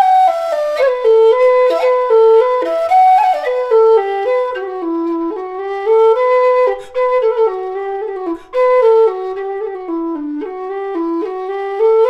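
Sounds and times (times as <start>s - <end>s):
low whistle melody: 0.0s - 12.0s.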